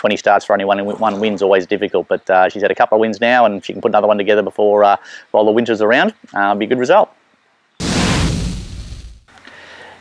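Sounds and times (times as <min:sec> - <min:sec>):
boom and whoosh effect: 0:07.8 - 0:09.3.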